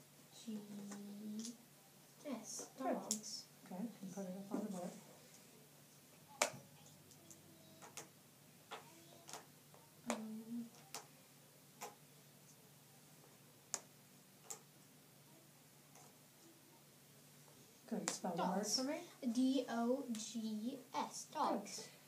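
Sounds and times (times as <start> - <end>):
person humming: 10.1 - 10.8.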